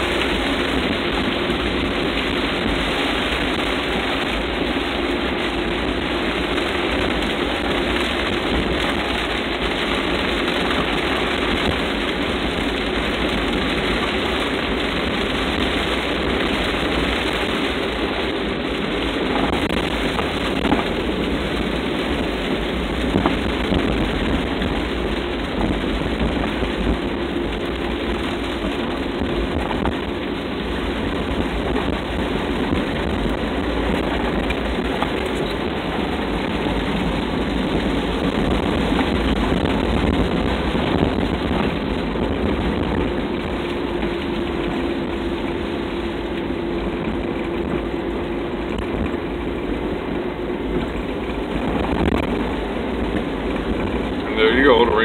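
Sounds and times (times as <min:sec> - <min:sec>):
car engine running: 0:00.0 - 0:55.0
rain on car windshield: 0:00.0 - 0:55.0
tyres on wet road: 0:00.0 - 0:55.0.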